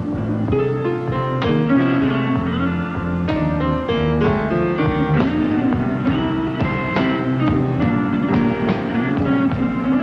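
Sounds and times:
blues band playing: 0.0 - 10.0
guitar: 0.0 - 10.0.

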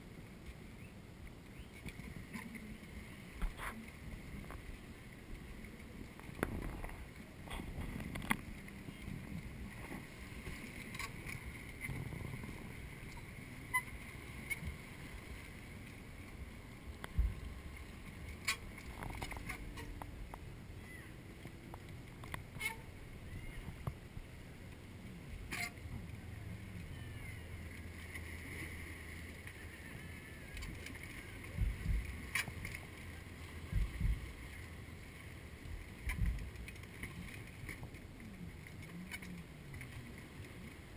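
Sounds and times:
water lapping: 0.0 - 40.9
wind rumble: 2.1 - 38.7
low thump: 17.1 - 17.4, 33.7 - 34.2, 36.1 - 36.5.

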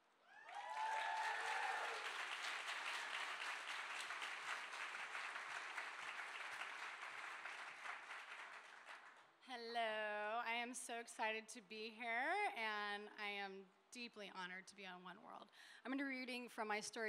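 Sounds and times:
audience applauding: 0.4 - 9.2.

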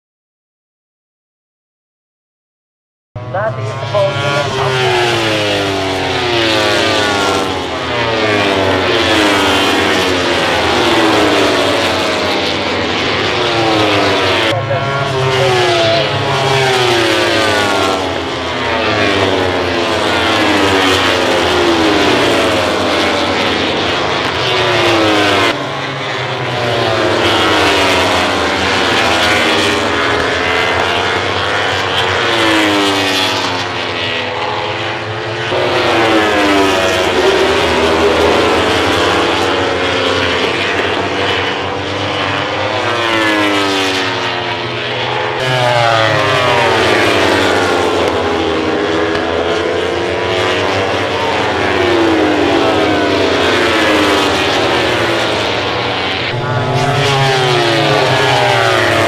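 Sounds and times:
racing motorcycles passing at high revs: 3.4 - 59.0.

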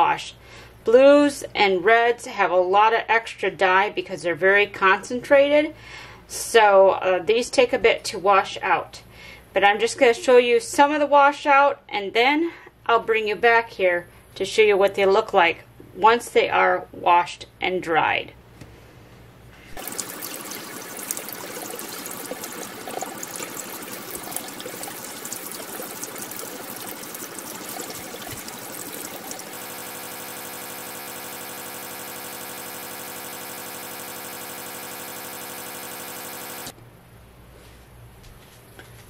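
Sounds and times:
tap water splashing in a sink: 19.7 - 36.7.

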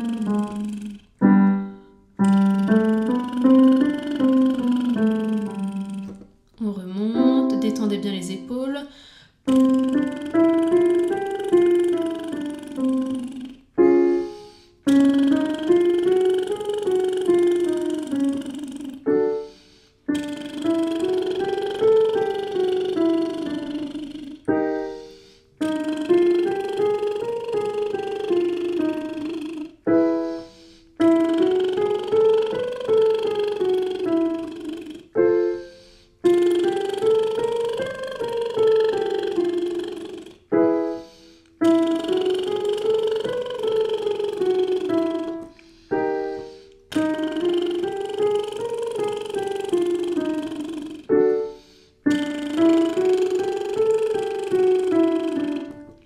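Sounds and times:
woman doing lip trills: 0.0 - 1.6, 2.2 - 6.7, 9.4 - 56.0
digital piano: 0.0 - 6.3, 7.1 - 8.7, 9.5 - 56.0.

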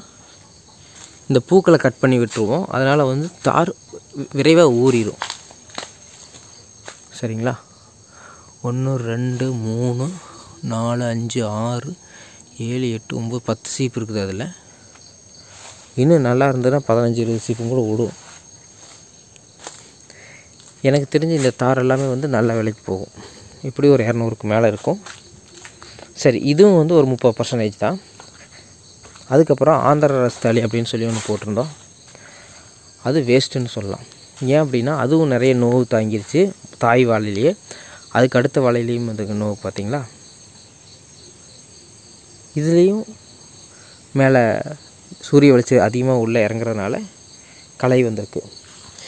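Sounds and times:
insects chirring: 0.0 - 49.0
low background hiss: 0.0 - 49.0
footsteps on dry leaves: 0.5 - 3.5, 4.1 - 7.2, 14.9 - 16.2, 17.2 - 23.7, 24.9 - 26.2, 28.0 - 32.8
sharp leaf crunch: 4.1 - 7.1, 17.3 - 23.7, 31.1 - 32.7.

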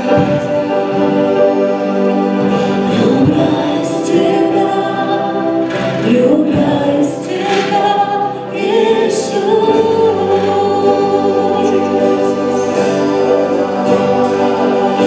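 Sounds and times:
live band playing: 0.0 - 15.0
voices singing worship song: 2.0 - 15.0.

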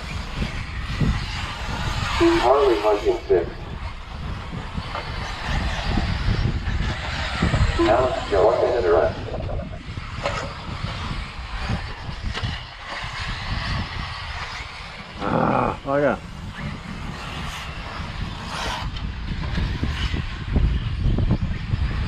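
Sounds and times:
wind on microphone: 0.0 - 22.0
short voice burst: 2.2 - 3.6, 7.7 - 9.5.

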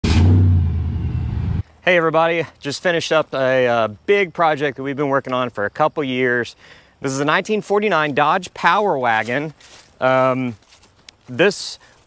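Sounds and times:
engine running: 0.0 - 1.6.

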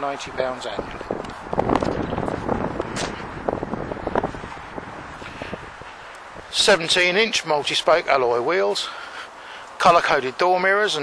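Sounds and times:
wind noise on microphone: 0.0 - 7.3.

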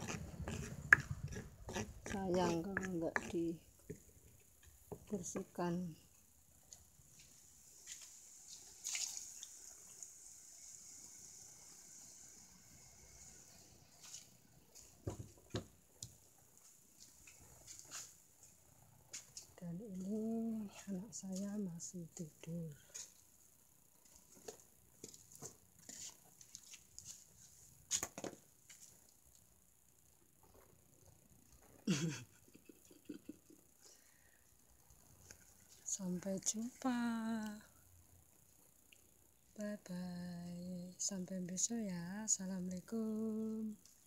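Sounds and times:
person speaking: 0.0 - 3.6.

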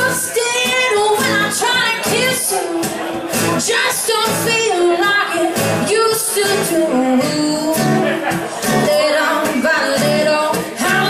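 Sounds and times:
acoustic guitars strummed: 0.0 - 11.0
woman singing into a microphone: 0.0 - 11.0.

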